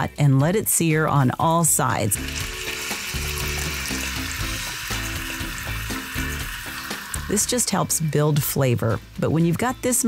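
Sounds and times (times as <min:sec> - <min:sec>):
meat sizzling in hot oil: 0:01.6 - 0:08.1.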